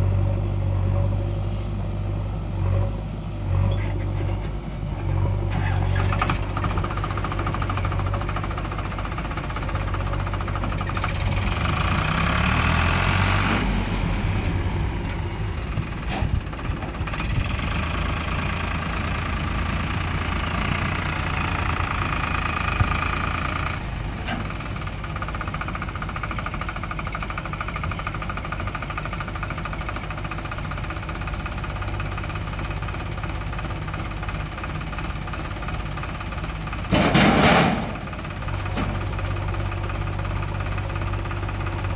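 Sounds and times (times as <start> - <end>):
diesel engine running: 0.0 - 41.9.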